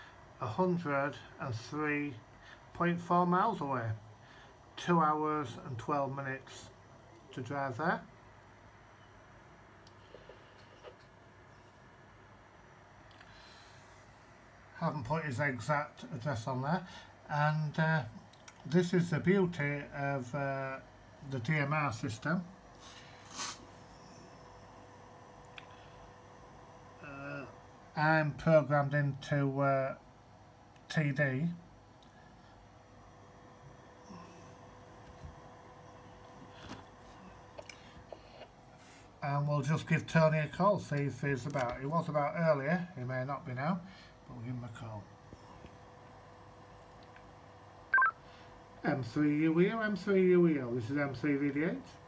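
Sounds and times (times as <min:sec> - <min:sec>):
faint room tone hum: 0:00.0 - 0:52.0
breathy sniff: 0:22.8 - 0:23.8
radio stepped beeps: 0:47.9 - 0:48.2.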